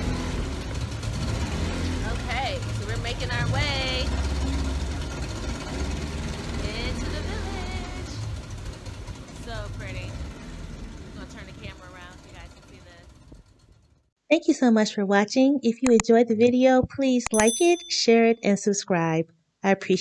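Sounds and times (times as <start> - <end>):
motorboat engine running: 0.0 - 14.1.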